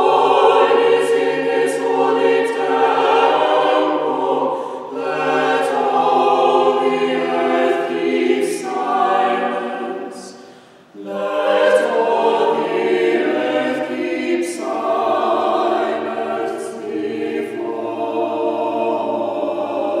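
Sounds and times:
choir singing a hymn: 0:00.0 - 0:20.0
short breath: 0:04.5 - 0:04.9, 0:10.3 - 0:10.9.

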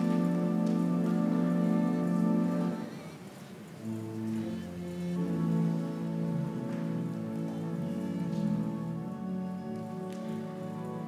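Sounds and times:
organ playing sustained chords: 0:00.0 - 0:03.1, 0:03.8 - 0:11.0.

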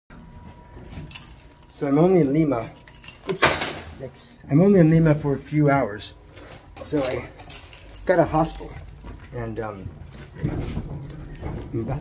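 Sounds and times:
metallic jingling and clinking: 0:00.7 - 0:03.9, 0:06.4 - 0:12.0
man speaking: 0:03.9 - 0:06.2, 0:06.8 - 0:09.9.

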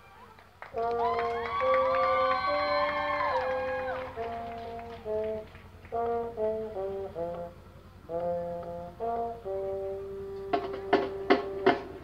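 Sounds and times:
marching band brass notes: 0:00.0 - 0:12.0.

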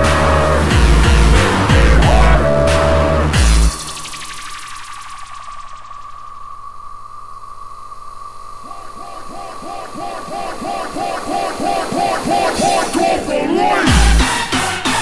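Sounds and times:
falling synth sweep: 0:00.0 - 0:14.5
held synth tone: 0:08.6 - 0:14.1
repeating swooping synth figure: 0:08.6 - 0:14.2.

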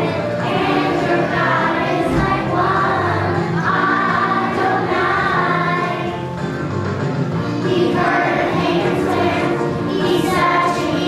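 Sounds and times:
children's choir singing: 0:00.0 - 0:06.6, 0:07.3 - 0:11.0.

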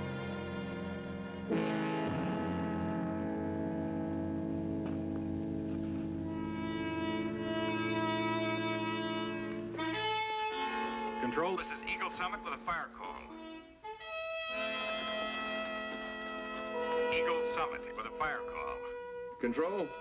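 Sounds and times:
orchestral brass and strings chords: 0:00.0 - 0:04.7, 0:06.1 - 0:20.0.

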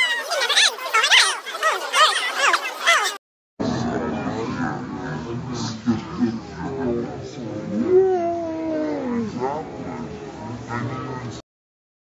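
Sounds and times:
crowd chatter: 0:00.0 - 0:11.4.

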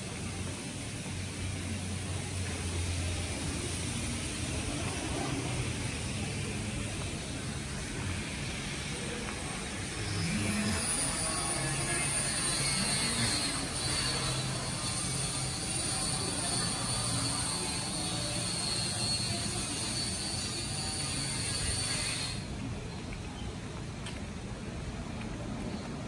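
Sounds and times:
thin high whine: 0:00.0 - 0:22.7
low hum of traffic: 0:00.0 - 0:26.0.

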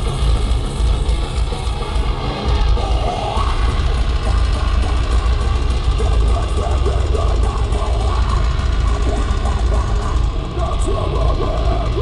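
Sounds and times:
heavy metal band playing live: 0:00.0 - 0:12.0.

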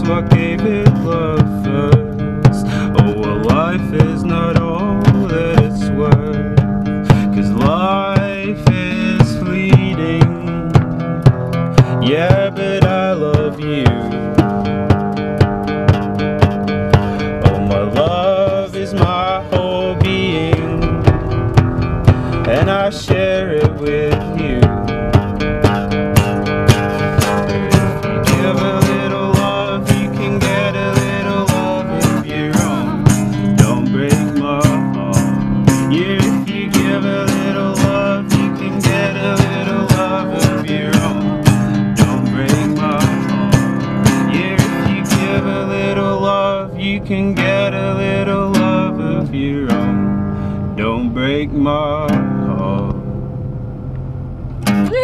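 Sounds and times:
percussive beat: 0:00.0 - 0:50.2, 0:54.6 - 0:55.0
strummed acoustic guitar: 0:00.0 - 0:55.0.

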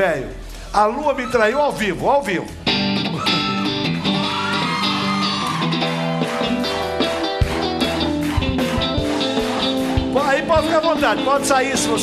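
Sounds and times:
electric guitar lead sliding: 0:02.5 - 0:12.0
calypso pop band playing: 0:02.6 - 0:12.0.

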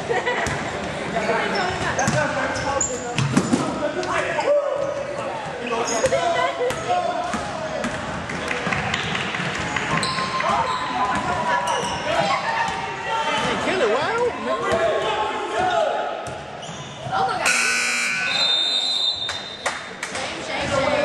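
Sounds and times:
players' voices: 0:00.0 - 0:21.0
sneaker squeaks: 0:01.4 - 0:03.6, 0:04.8 - 0:06.9, 0:09.6 - 0:12.7, 0:16.3 - 0:19.6
scoreboard buzzer: 0:17.4 - 0:18.4.

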